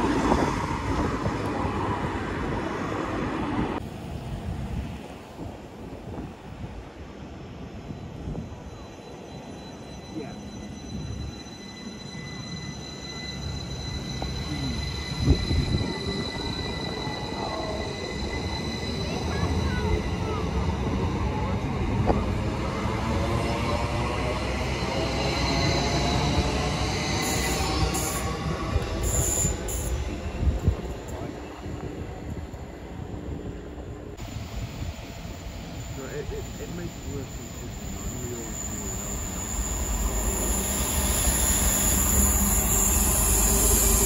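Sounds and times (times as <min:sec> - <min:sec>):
train wheels squealing: 0:07.8 - 0:44.0
electric train running: 0:09.1 - 0:33.1, 0:33.7 - 0:44.0.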